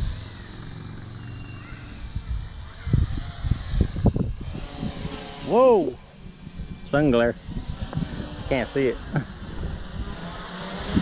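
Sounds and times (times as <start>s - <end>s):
drone propellers humming: 0.0s - 11.0s
wind gusts on microphone: 1.6s - 11.0s.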